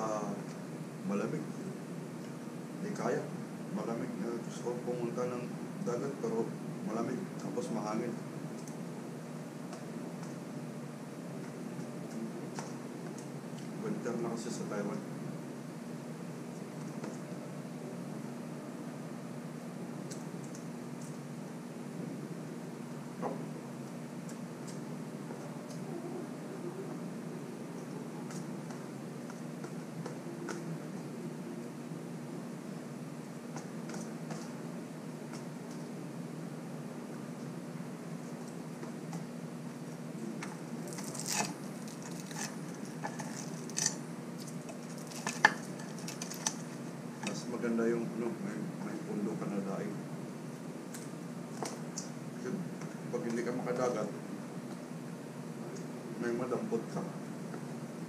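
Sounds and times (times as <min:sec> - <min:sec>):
low hum: 0:03.6 - 0:47.2.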